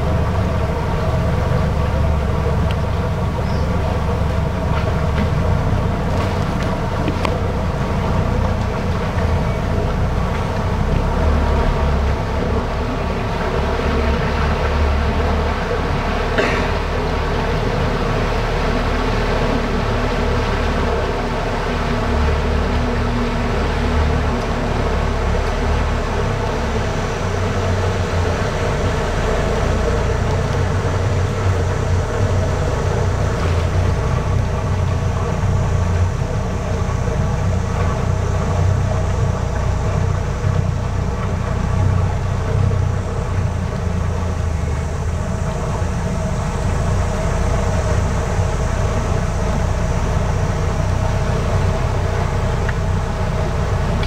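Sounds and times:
boat engine drone: 0.0s - 54.0s.

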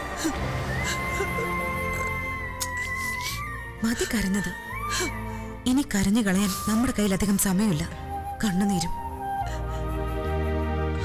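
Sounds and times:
background music: 0.0s - 11.0s
woman speaking: 5.6s - 9.0s.

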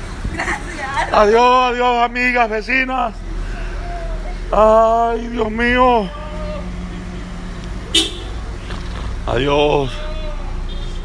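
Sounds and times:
vehicle engines humming: 0.0s - 11.0s
car horn toot: 7.9s - 8.4s, 9.8s - 11.0s.

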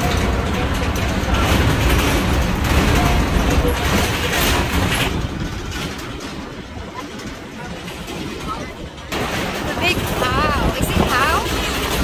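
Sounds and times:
train rumbling: 0.0s - 12.0s
wind noise: 0.0s - 12.0s.

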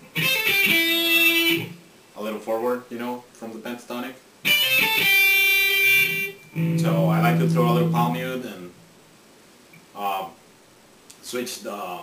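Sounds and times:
clean electric guitar note: 6.5s - 8.9s
man talking: 6.8s - 8.8s, 11.2s - 12.0s.

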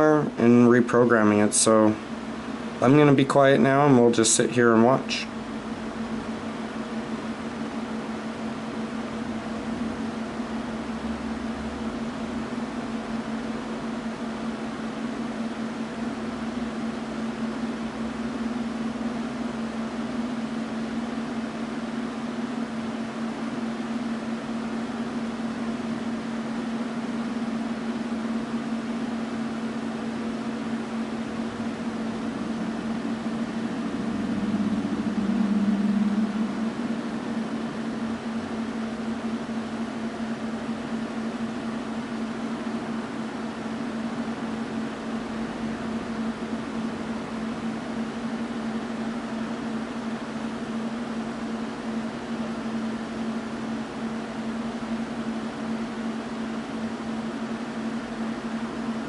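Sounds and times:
steady mechanical hum: 0.0s - 59.0s.

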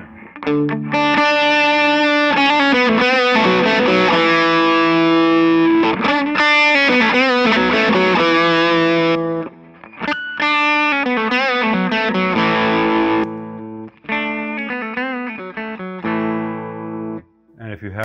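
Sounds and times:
distorted electric guitar: 0.0s - 17.2s
clean electric guitar: 0.0s - 17.5s.

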